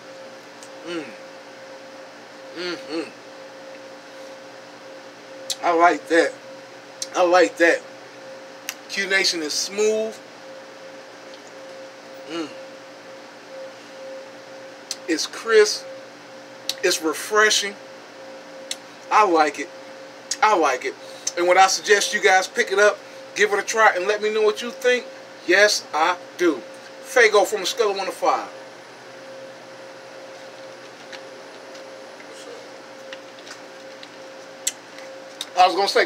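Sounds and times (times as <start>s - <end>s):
constant mid-pitched tone: 0.0s - 36.0s
drink coolers humming: 0.0s - 36.0s
man humming mmm: 0.6s - 1.2s, 2.5s - 3.2s, 12.2s - 12.7s.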